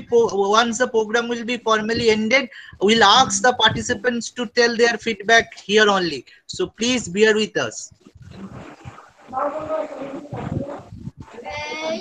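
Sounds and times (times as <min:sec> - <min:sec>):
indistinct voice over video call: 0:00.0 - 0:12.0.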